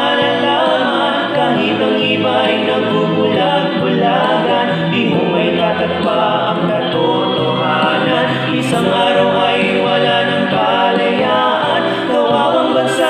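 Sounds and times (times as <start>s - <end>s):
male vocal trio singing: 0.0s - 13.0s.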